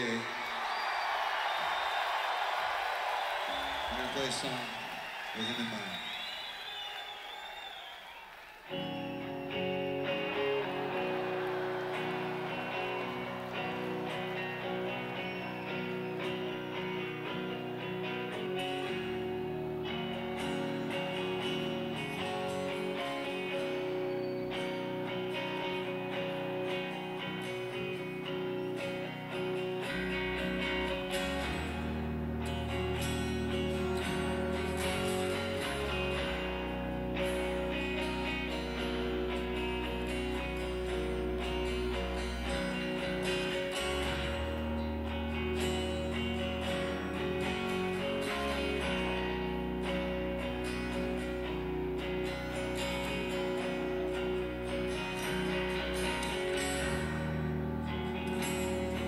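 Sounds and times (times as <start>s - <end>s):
live rock band playing: 8.6s - 59.0s.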